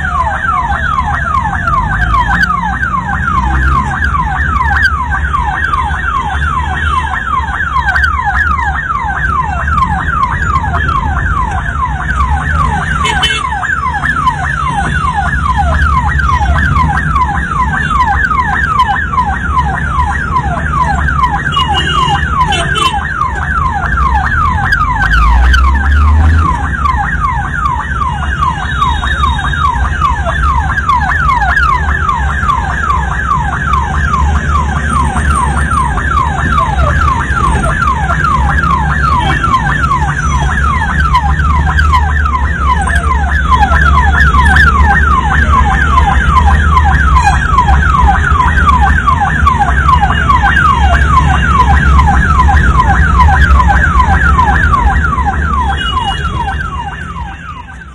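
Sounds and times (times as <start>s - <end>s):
ambulance siren wailing: 0.0s - 57.9s
low rumble of road traffic: 0.0s - 57.9s.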